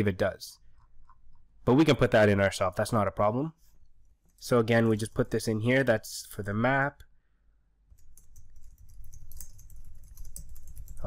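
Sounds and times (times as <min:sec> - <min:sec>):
fast typing on keyboard: 0:07.9 - 0:11.0.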